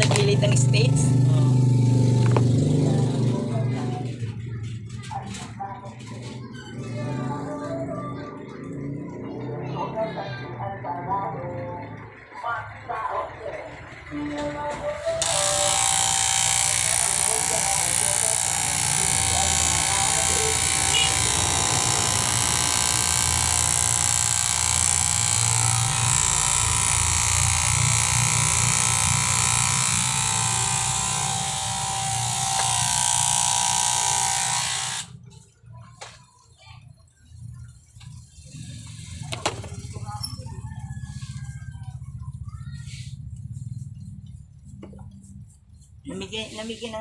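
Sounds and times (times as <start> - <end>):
electric hair clippers buzzing: 15.2 - 35.2.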